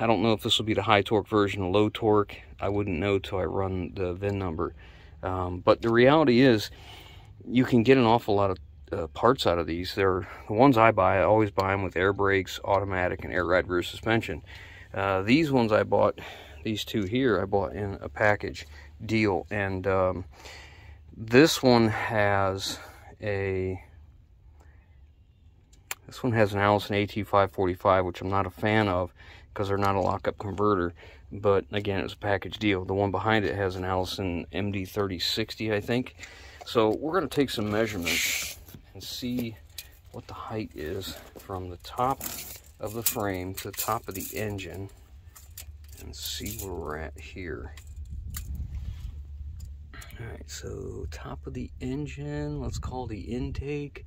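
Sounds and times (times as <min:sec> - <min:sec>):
wind rumble on microphone: 0:47.1 - 0:54.0.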